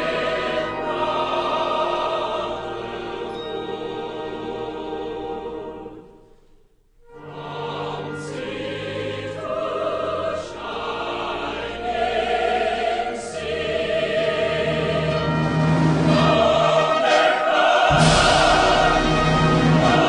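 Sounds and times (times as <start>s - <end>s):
choir singing sustained chords: 0.0s - 6.4s, 7.0s - 20.0s.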